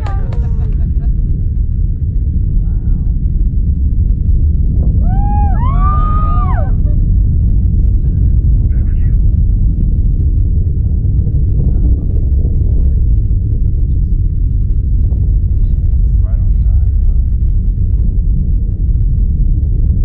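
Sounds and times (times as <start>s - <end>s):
rocket engines rumbling: 0.0s - 20.0s
person whooping: 5.0s - 7.0s.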